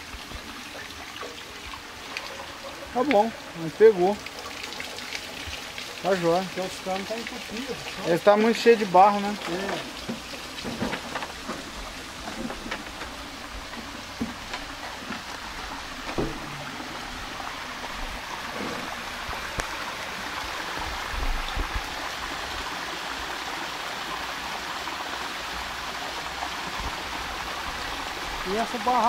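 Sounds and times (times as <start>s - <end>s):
water spilling over a dam: 0.0s - 29.0s.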